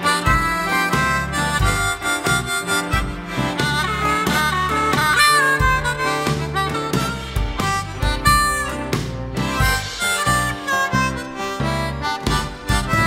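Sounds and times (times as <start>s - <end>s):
bass line: 0.0s - 13.0s
blues harmonica solo with bent notes: 0.0s - 13.0s
steady drum beat: 0.0s - 13.0s.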